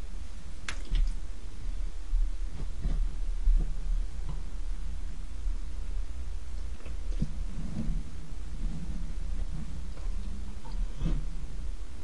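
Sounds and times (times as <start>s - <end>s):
steady low microphone hum: 0.0s - 12.0s.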